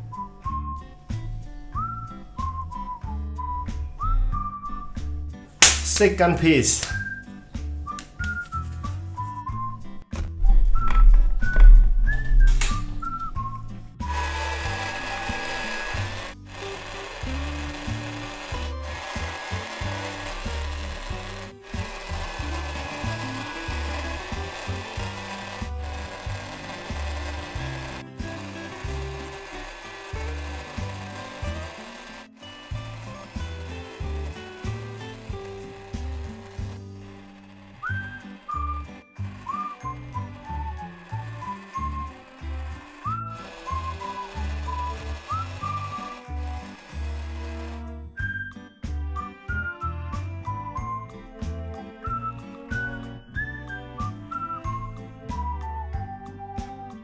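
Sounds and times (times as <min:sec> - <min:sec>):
toy pottery wheel: 0:14.0 - 0:48.4.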